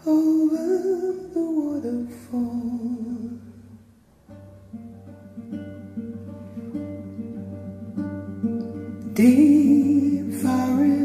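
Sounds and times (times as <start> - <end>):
acoustic guitar picking: 0.0 - 11.0.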